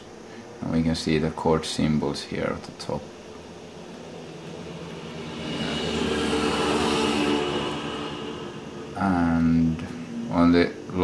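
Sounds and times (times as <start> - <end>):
passing vehicle hum: 2.8 - 10.9.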